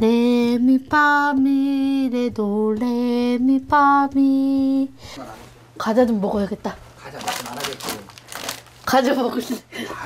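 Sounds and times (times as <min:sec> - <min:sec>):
plastic packaging crinkling: 0:07.0 - 0:09.2.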